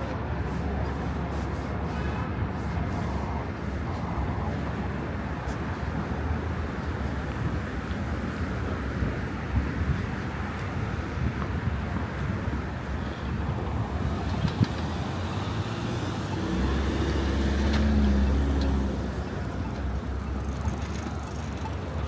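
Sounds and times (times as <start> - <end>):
city street traffic: 0.0 - 22.0
vehicle engine rumble passing: 13.8 - 22.0.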